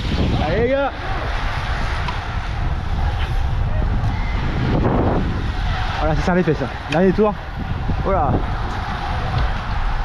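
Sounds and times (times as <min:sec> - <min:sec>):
road noise: 0:00.0 - 0:10.0
wind buffeting microphone: 0:00.0 - 0:10.0.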